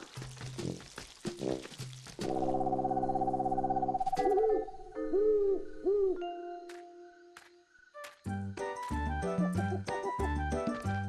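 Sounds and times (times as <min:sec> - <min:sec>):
cartoon owl hoots: 0:04.0 - 0:06.3.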